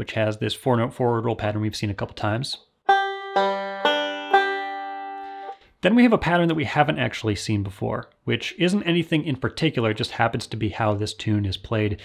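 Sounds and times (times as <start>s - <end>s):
banjo picked slowly: 2.9s - 5.7s.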